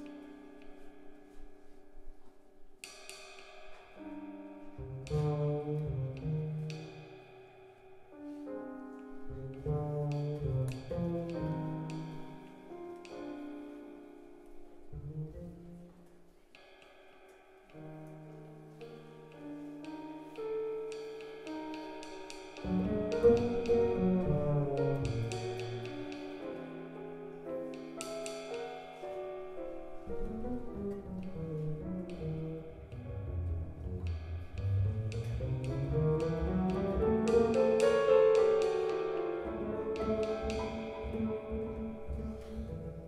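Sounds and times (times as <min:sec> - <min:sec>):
double bass notes: 0:04.8 - 0:07.0, 0:09.2 - 0:12.4, 0:14.9 - 0:16.0, 0:22.6 - 0:26.4, 0:30.1 - 0:43.0.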